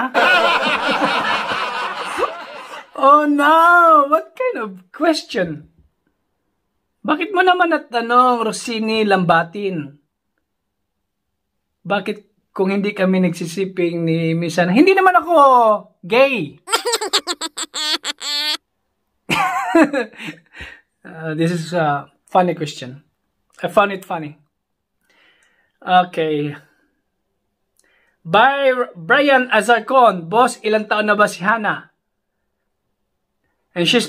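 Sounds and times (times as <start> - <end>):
man laughing: 16.7 - 18.6
man stifled snickering: 16.7 - 18.6.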